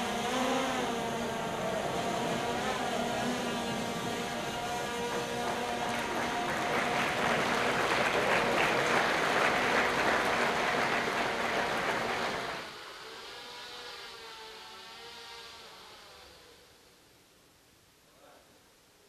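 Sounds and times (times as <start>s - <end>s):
drone rotors whining: 0.0s - 16.5s
audience applause: 2.2s - 12.7s.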